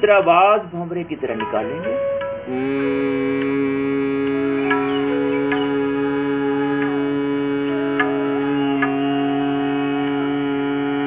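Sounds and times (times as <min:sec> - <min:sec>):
instrumental music: 0:00.0 - 0:11.0
plucked string notes: 0:01.2 - 0:11.0
man humming: 0:02.4 - 0:11.0.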